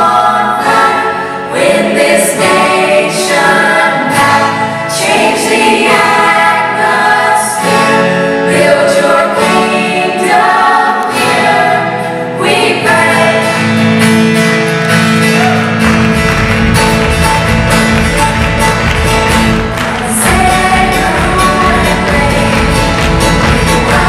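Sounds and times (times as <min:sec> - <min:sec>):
young voices singing in harmony: 0:00.0 - 0:13.8, 0:19.8 - 0:24.0.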